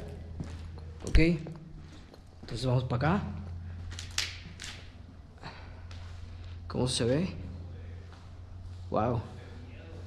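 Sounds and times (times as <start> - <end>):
footsteps on debris: 0.0 - 2.8, 3.6 - 5.2
steady low hum: 0.0 - 10.0.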